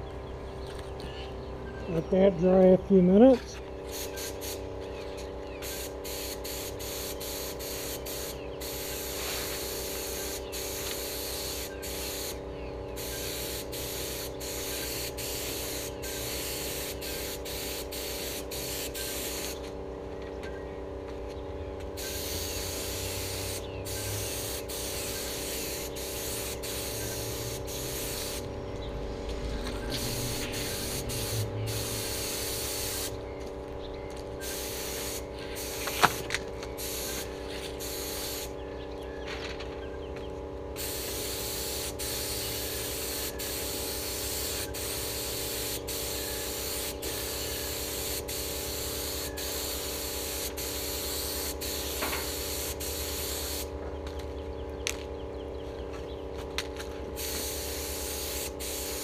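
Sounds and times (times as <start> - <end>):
steady low hum: 0.0 - 59.0
spray gun hissing: 3.9 - 4.6, 5.6 - 12.4, 13.0 - 19.6, 22.0 - 28.5, 29.9 - 33.2, 34.4 - 36.2, 36.8 - 38.5, 40.8 - 53.7, 57.2 - 59.0.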